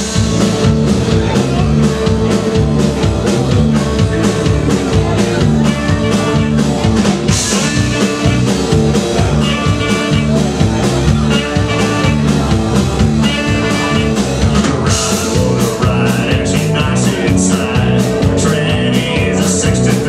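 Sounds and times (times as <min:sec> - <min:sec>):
live rockabilly band playing: 0:00.0 - 0:20.0.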